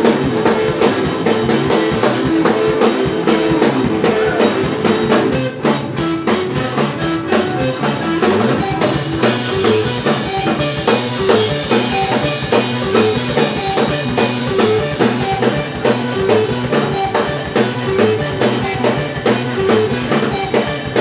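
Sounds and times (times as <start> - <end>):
busy drum kit: 0.0 - 21.0
electric guitar picked notes: 0.0 - 21.0.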